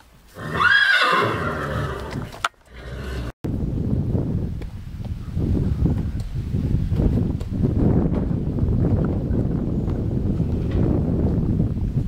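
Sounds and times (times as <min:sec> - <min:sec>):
horse whinnying: 0:00.3 - 0:03.3.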